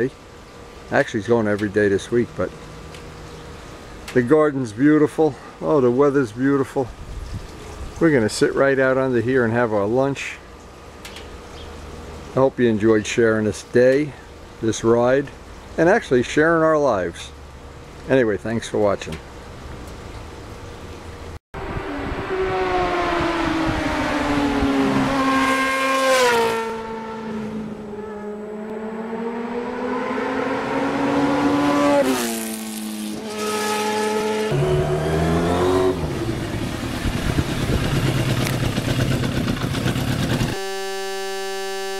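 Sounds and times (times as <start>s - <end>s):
motorcycle engine accelerating: 21.6s - 41.9s
electronic buzzer tone: 40.5s - 41.9s.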